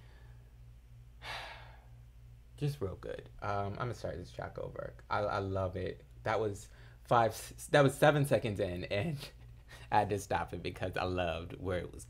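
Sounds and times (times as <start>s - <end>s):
faint low hum: 0.0s - 12.0s
man sighing: 1.2s - 1.9s.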